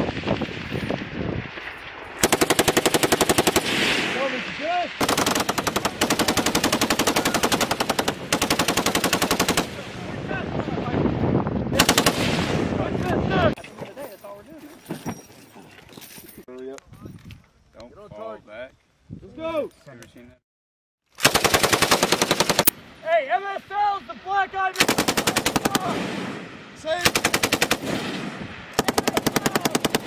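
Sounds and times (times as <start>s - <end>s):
machine gun firing bursts: 2.2s - 3.8s, 5.0s - 9.8s, 11.8s - 12.4s, 21.2s - 22.8s, 24.8s - 26.1s, 27.0s - 28.1s, 28.8s - 30.0s.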